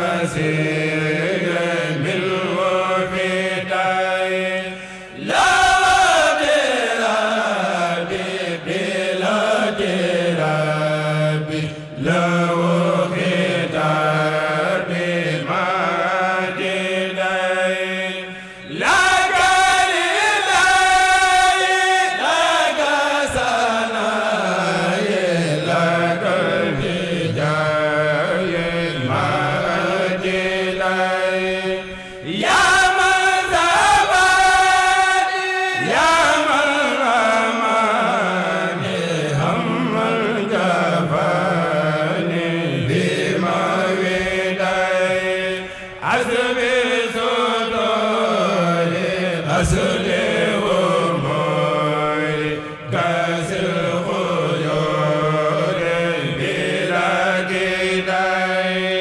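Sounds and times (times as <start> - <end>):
men chanting in unison: 0.0 - 59.0.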